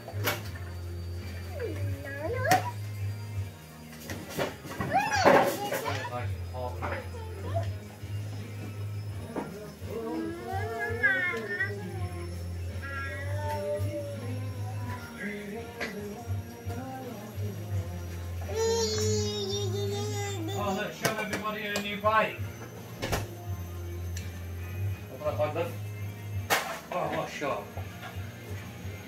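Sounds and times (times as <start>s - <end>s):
background music: 0.0s - 29.0s
child babbling: 4.9s - 6.1s, 10.1s - 14.4s, 18.5s - 20.9s
child squealing: 4.9s - 6.1s, 10.2s - 12.2s, 12.8s - 14.3s, 18.5s - 20.9s.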